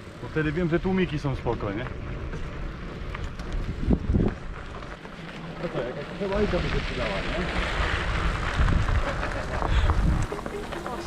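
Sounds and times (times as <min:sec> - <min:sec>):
bicycle tyre rolling on dirt: 0:00.0 - 0:11.0
light bike clicks: 0:01.0 - 0:11.0
wind rumble on microphone: 0:01.2 - 0:04.9, 0:06.3 - 0:11.0.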